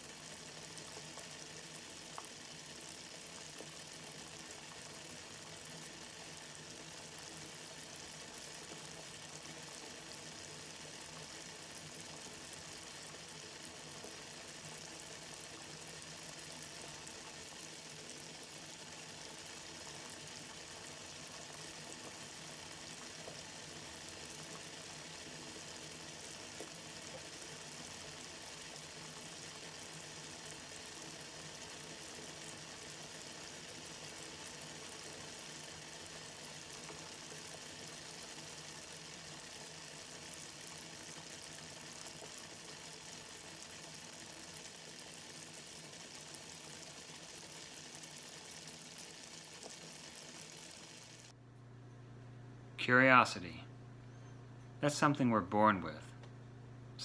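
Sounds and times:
liquid boiling in a pot: 0:00.0 - 0:51.4.

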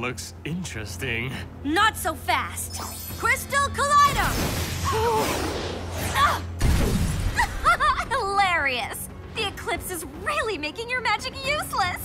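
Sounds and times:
woman laughing: 0:07.4 - 0:08.5.

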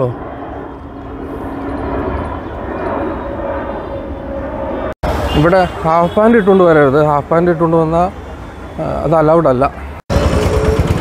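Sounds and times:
jet airliner passing overhead: 0:00.0 - 0:11.0.

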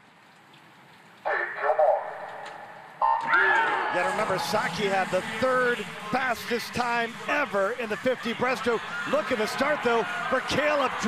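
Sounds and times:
starter's call over loudspeakers: 0:01.2 - 0:11.0
crowd noise: 0:01.3 - 0:11.0.

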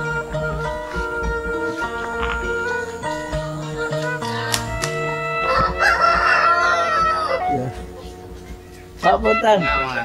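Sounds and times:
background music: 0:00.0 - 0:10.0
rooster crowing: 0:05.0 - 0:07.6.

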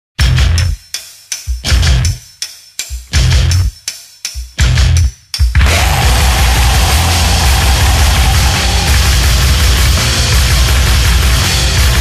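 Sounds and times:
death metal music: 0:01.6 - 0:02.2, 0:04.6 - 0:12.0.

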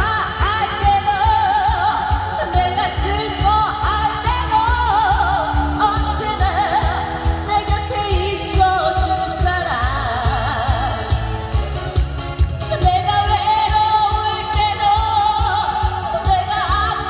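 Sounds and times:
woman singing with vibrato: 0:00.0 - 0:11.6, 0:12.6 - 0:17.0
backing track with bass beat: 0:00.0 - 0:17.0.

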